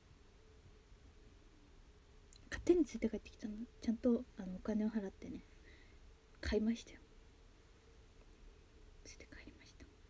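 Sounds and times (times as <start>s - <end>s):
faint hum: 0.0s - 10.0s
woman whispering: 6.4s - 7.1s, 9.0s - 10.0s.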